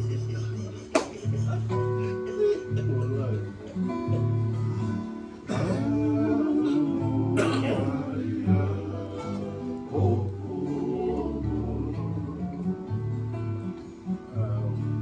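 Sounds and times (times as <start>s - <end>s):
acoustic guitars strumming: 0.0s - 15.0s
person singing: 4.6s - 13.0s.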